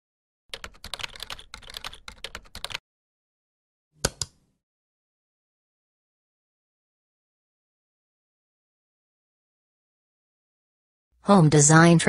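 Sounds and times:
keyboard typing: 0.5s - 2.8s, 4.0s - 4.4s.

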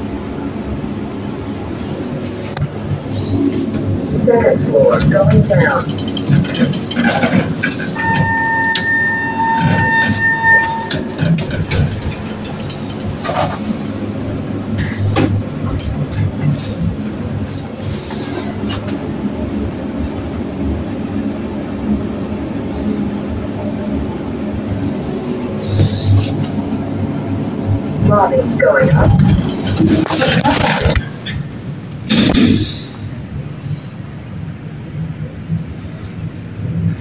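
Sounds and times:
elevator mechanical rumble and hum: 0.0s - 37.0s
steady beep: 8.0s - 11.2s.

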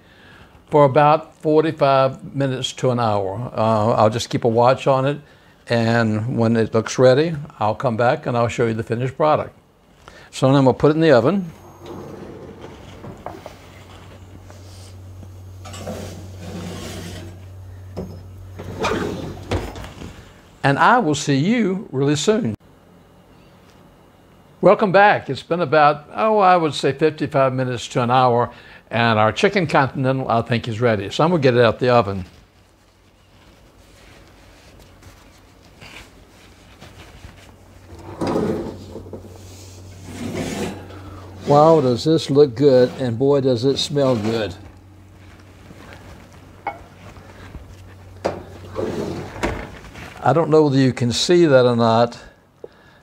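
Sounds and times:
low steady hum: 0.0s - 53.0s
oven door opening and shutting: 11.6s - 13.6s, 15.6s - 20.1s, 37.9s - 41.8s, 48.2s - 50.0s
scraping and rustling: 11.7s - 20.3s, 32.0s - 50.4s
baking dish sliding onto rack: 15.6s - 17.4s, 37.9s - 41.7s
metal scraping: 15.6s - 17.4s, 37.9s - 42.0s.

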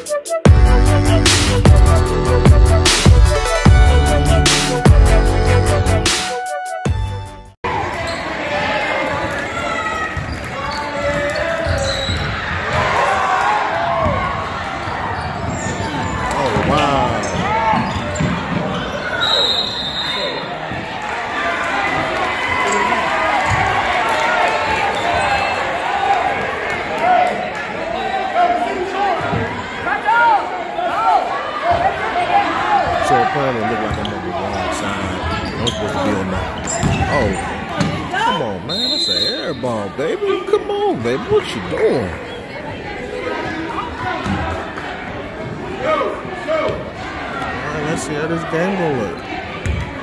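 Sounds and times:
crowd voices echoing: 7.6s - 50.0s
sneakers squeaking on floor: 7.9s - 8.4s, 9.0s - 13.0s, 14.0s - 20.8s, 24.7s - 25.6s, 31.6s - 39.9s, 49.0s - 50.0s
basketball bouncing on wooden floor: 49.6s - 49.9s.

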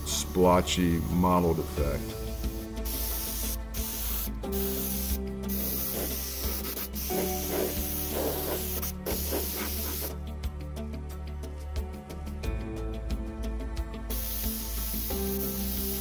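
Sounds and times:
background music: 0.0s - 16.0s
spray gun air hiss: 2.1s - 10.2s, 14.1s - 16.0s.

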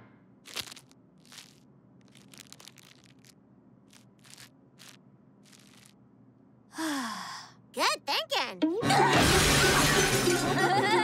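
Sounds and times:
paper crinkling and rustling: 0.4s - 6.0s.

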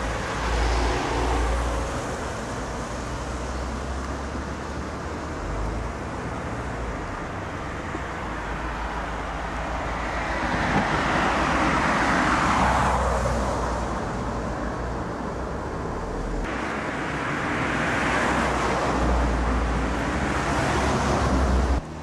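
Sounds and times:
traffic on wet road: 0.0s - 22.0s.

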